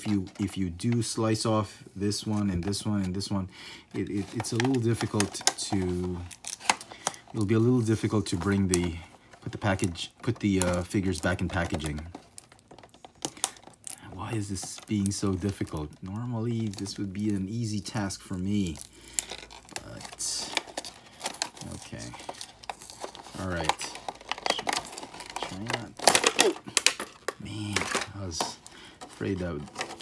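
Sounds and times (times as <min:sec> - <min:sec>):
plastic blister crinkling: 0:00.0 - 0:30.0
sharp plastic cracks: 0:09.6 - 0:16.0, 0:19.0 - 0:30.0.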